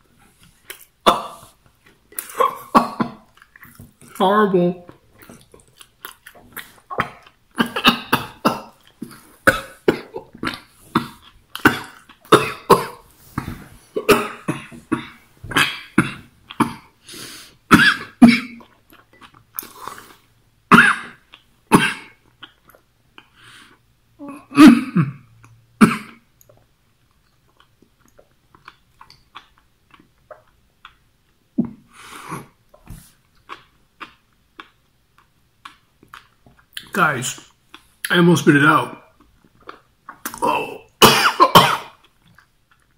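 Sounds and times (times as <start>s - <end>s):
man coughing: 7.6s - 8.7s, 11.7s - 13.0s, 14.0s - 16.9s, 40.6s - 42.0s
man clearing his throat: 40.4s - 42.0s.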